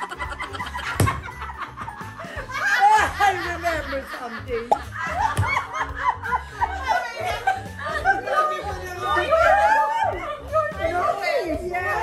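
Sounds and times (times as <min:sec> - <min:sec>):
women laughing hard: 0:00.0 - 0:10.2.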